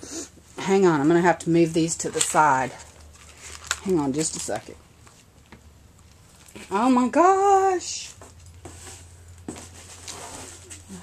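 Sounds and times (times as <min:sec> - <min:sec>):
items moved on a desk: 0:08.1 - 0:11.0.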